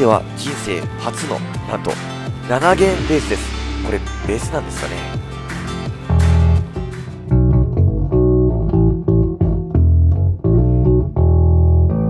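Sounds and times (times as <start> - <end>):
electric bass plucked notes: 2.4 - 12.0.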